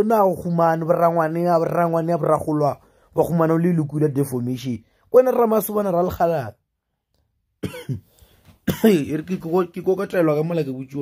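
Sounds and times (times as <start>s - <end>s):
man speaking: 0.0s - 6.6s, 8.7s - 11.0s
man coughing: 7.6s - 9.2s.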